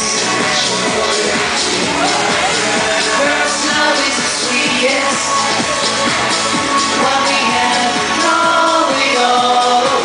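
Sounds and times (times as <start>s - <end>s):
men singing: 0.0s - 6.2s
loud pop song through pa: 0.0s - 10.0s.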